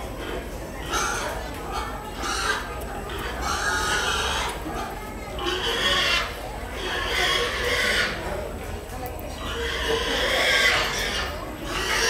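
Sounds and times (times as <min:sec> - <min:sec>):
crowd chatter: 0:00.0 - 0:12.0
pig squealing: 0:00.1 - 0:08.3, 0:09.3 - 0:12.0.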